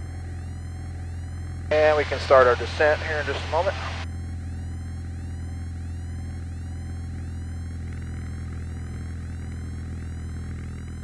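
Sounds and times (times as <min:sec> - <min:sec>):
airplane engine drone: 0:00.0 - 0:11.0.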